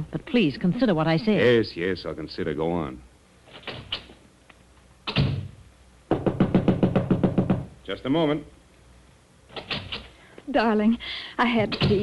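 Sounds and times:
knocking on a door: 6.1s - 7.8s.

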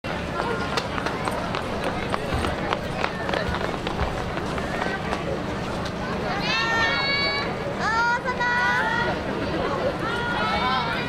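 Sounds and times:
people's voices: 0.1s - 11.0s
footsteps on stone paving: 0.4s - 5.8s.

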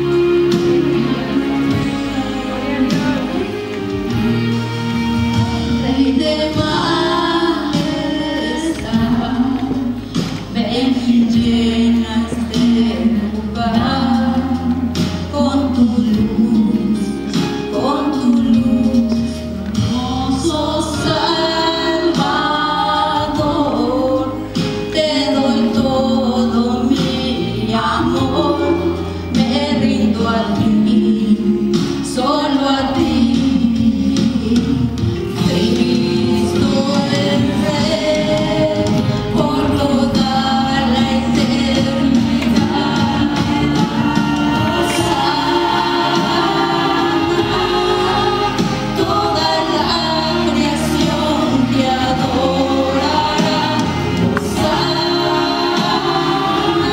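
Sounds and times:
woman singing: 0.0s - 4.5s, 5.3s - 56.9s
musical backing: 0.0s - 56.9s.

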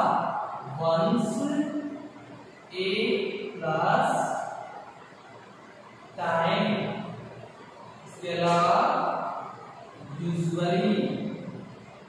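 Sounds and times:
man speaking: 0.0s - 2.0s, 2.7s - 4.6s, 6.2s - 7.2s, 8.1s - 9.4s, 10.1s - 11.5s.

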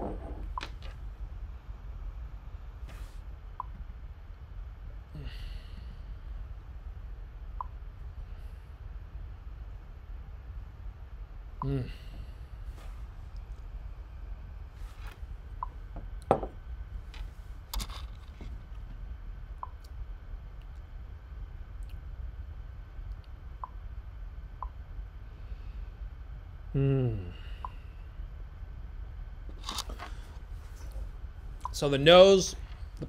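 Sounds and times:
room hum: 0.0s - 33.0s.

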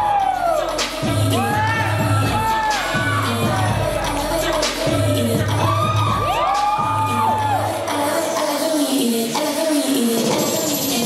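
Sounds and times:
high whoops: 0.0s - 3.9s, 5.5s - 7.9s
audience cheering: 0.0s - 4.5s, 5.5s - 8.0s
dance music with bass beat: 0.0s - 11.0s.

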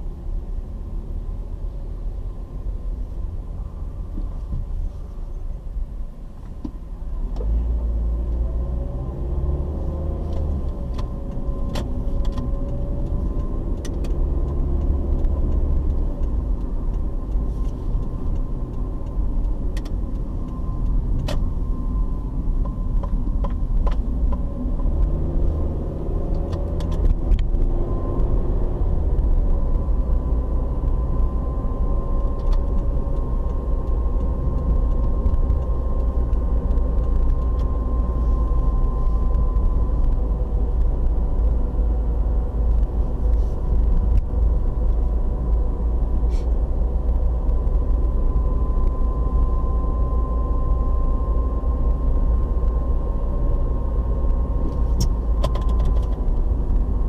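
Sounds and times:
car engine and road rumble: 0.0s - 57.0s
faint steady whine: 29.4s - 57.0s.

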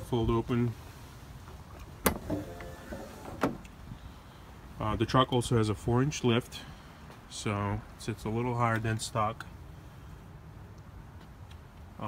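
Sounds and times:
running board clunk: 2.0s - 3.6s.

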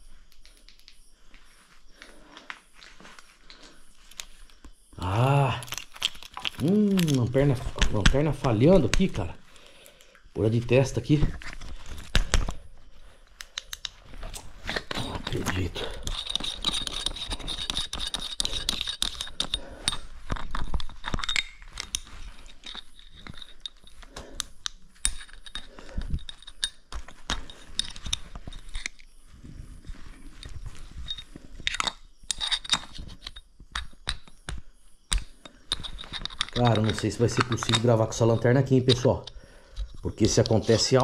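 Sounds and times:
flashlight handling clicks and rattles: 0.3s - 1.0s, 2.0s - 4.6s, 5.7s - 9.3s, 13.4s - 29.1s, 30.4s - 41.0s.

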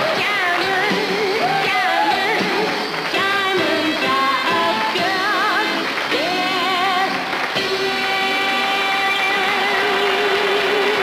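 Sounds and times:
band accompaniment: 0.0s - 11.0s.

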